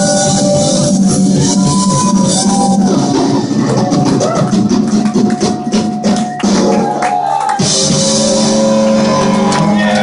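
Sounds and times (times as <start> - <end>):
live punk rock band: 0.0 - 6.8, 7.6 - 10.0
drums steady beat: 0.0 - 10.0.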